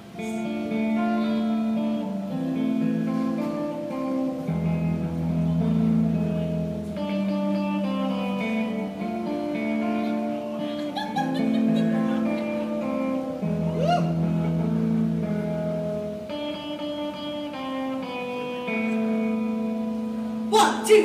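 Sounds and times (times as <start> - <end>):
amplified guitar chords: 0.0 - 21.0.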